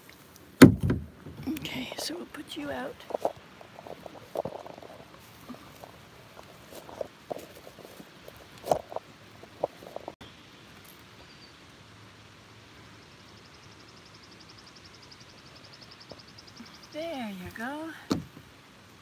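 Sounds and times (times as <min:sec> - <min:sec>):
camera knocking and rustling: 0:00.6 - 0:01.4, 0:03.0 - 0:10.2.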